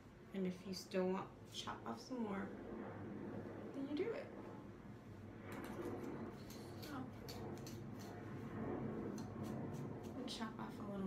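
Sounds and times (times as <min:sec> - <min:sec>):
scissors snipping hair: 0:05.6 - 0:08.2.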